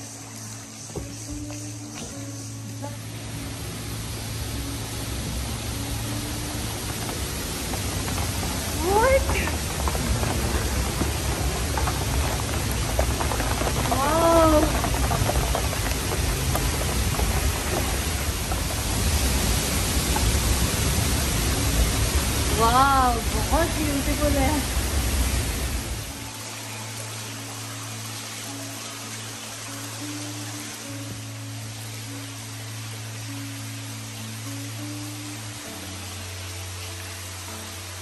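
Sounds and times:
waterfall rushing into pool: 0:00.0 - 0:38.0.

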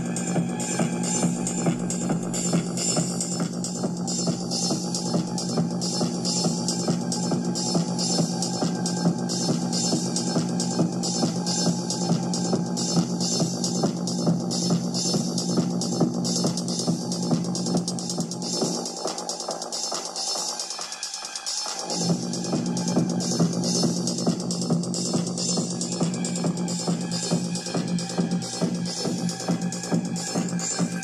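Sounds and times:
drum machine beat: 0:00.0 - 0:31.0.

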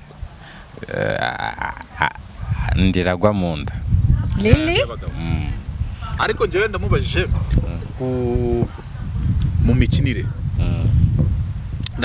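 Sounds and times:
person's rising vocal sound: 0:00.8 - 0:02.8
person speaking: 0:00.8 - 0:09.0.

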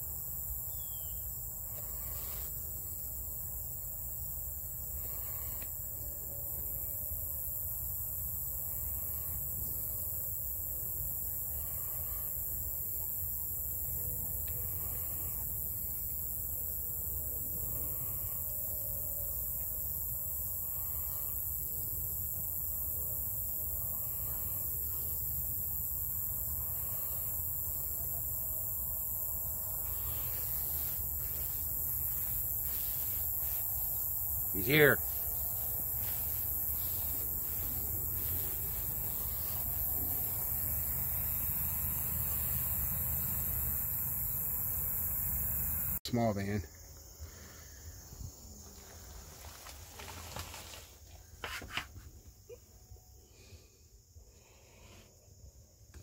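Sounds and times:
crickets and insects chirping: 0:00.0 - 0:56.0.

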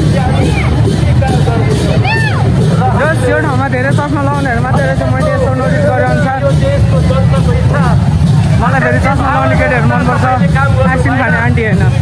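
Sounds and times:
crowd chatter: 0:00.0 - 0:12.0
low rumble: 0:00.0 - 0:12.0.

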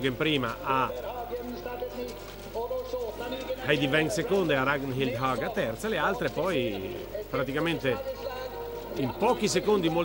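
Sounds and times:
crowd noise: 0:00.0 - 0:10.0
music from loudspeakers: 0:00.0 - 0:10.0.

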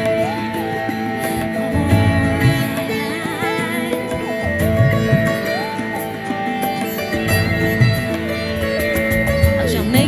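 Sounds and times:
band backing: 0:00.0 - 0:10.0
sitar melody: 0:00.0 - 0:10.0.

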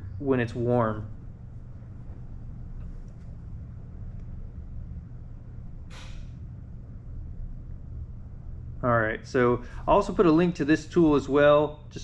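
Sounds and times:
low rumble: 0:00.0 - 0:12.0
brief hiss: 0:05.9 - 0:06.4.

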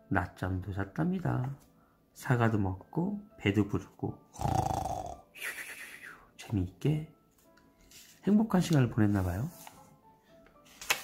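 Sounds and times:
man imitating snoring: 0:04.3 - 0:05.3.

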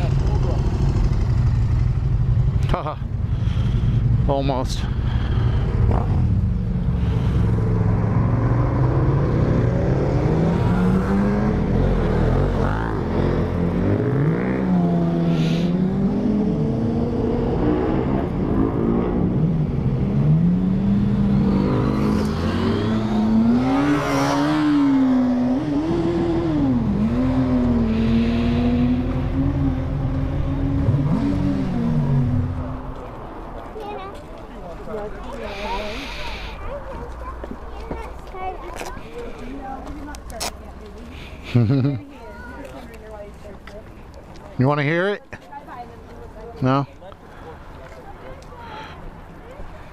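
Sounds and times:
motorcycle engine revving: 0:05.0 - 0:33.0.

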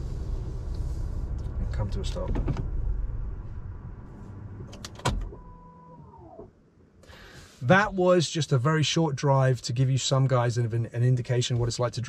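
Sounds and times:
car running rumble: 0:00.0 - 0:06.5.

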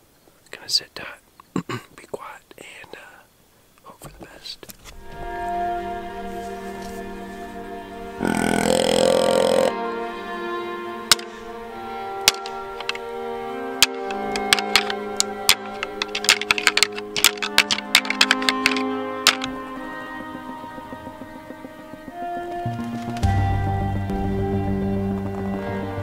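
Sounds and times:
music: 0:04.9 - 0:26.0
deer grunt call: 0:08.1 - 0:09.8
antlers rattling together: 0:12.2 - 0:13.2, 0:13.8 - 0:23.3.

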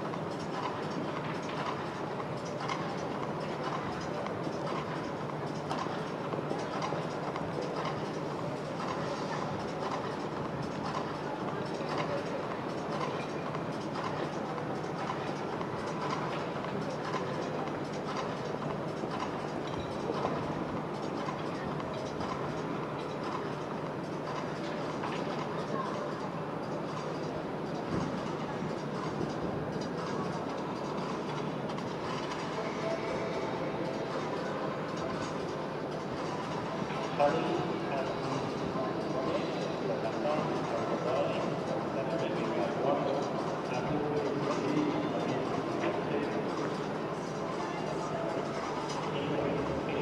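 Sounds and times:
arena background noise: 0:00.0 - 0:50.0
faint voices: 0:00.0 - 0:50.0
steady background hum: 0:00.0 - 0:50.0.

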